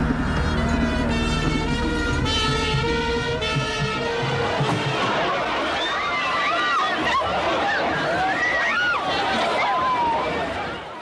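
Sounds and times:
car engine driving slowly: 0:00.0 - 0:03.8
music playing: 0:00.0 - 0:05.4.

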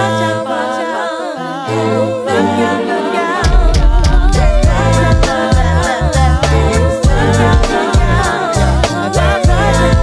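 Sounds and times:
a cappella vocal harmony: 0:00.0 - 0:10.0
low held bass notes: 0:03.5 - 0:10.0.

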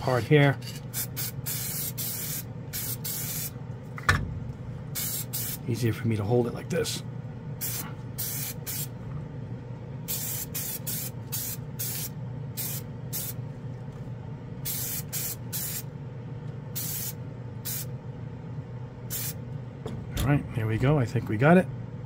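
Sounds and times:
exhaust fan humming: 0:00.0 - 0:22.0
aerosol spray can hissing: 0:01.0 - 0:03.5, 0:05.0 - 0:05.6, 0:07.6 - 0:08.9, 0:10.1 - 0:13.4, 0:14.7 - 0:15.8, 0:16.8 - 0:17.9, 0:19.1 - 0:19.4.

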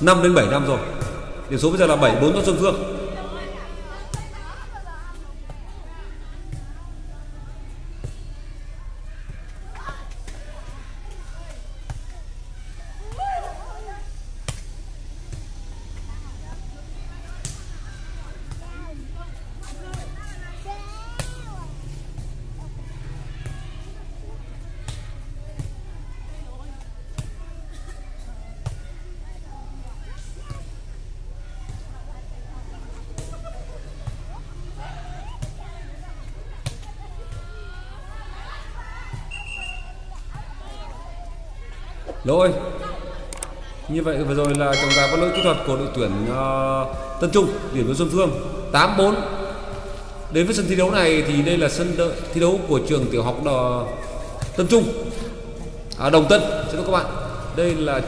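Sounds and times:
players shouting: 0:42.0 - 0:58.0.

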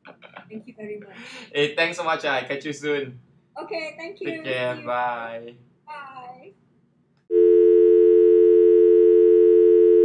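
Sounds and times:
person saying goodbye: 0:04.2 - 0:06.2
telephone dial tone: 0:07.3 - 0:10.0.

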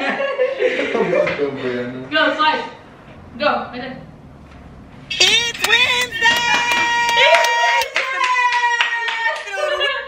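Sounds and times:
high voice singing: 0:05.1 - 0:08.0
clapping beat: 0:05.2 - 0:09.8.

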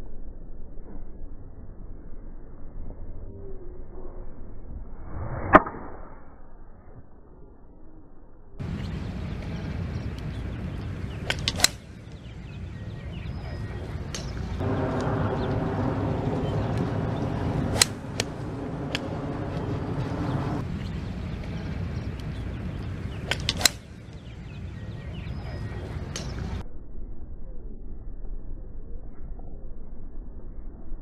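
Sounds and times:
golf club striking ball: 0:11.3 - 0:11.9, 0:14.1 - 0:20.6, 0:23.3 - 0:23.9
droning hum: 0:11.8 - 0:28.8
low steady rumble: 0:11.9 - 0:31.0.

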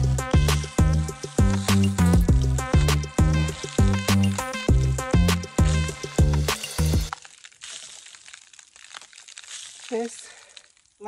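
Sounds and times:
dry leaves crinkling: 0:07.1 - 0:11.0.

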